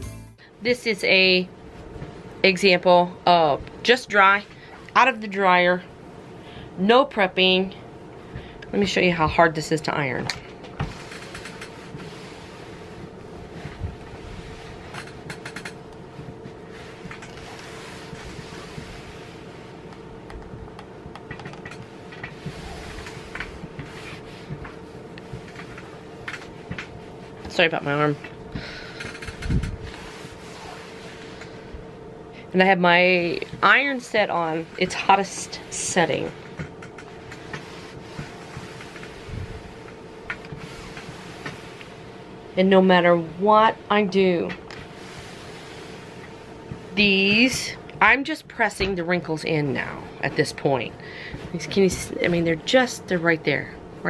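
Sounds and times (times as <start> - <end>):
steady background hum: 0.0 - 54.0
iron swishing over cloth: 10.8 - 15.3, 16.2 - 20.0, 21.9 - 28.2, 29.6 - 31.7, 32.6 - 53.2
iron swishing on cloth: 16.5 - 19.9, 22.4 - 24.7, 29.8 - 31.5, 33.0 - 36.4.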